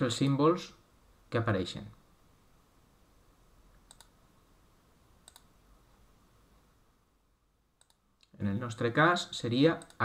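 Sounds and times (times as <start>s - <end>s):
faint computer mouse clicks: 3.7s - 4.2s, 5.2s - 5.5s, 7.8s - 8.4s, 9.8s - 10.0s.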